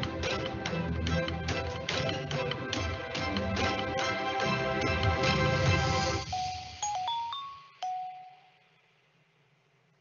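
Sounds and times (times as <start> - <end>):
electronic chime notes: 6.2 - 8.6.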